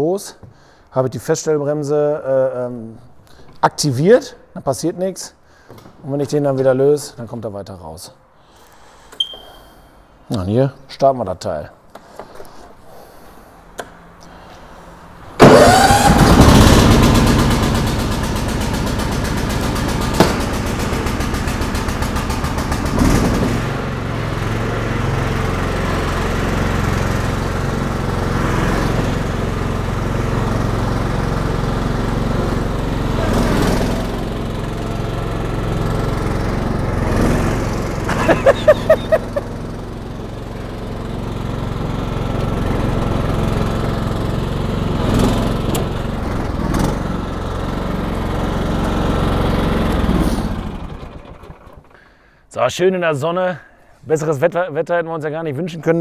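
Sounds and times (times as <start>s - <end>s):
quick loud beeps: 9.2s - 9.6s
ride-on mower engine running: 15.4s - 52.3s.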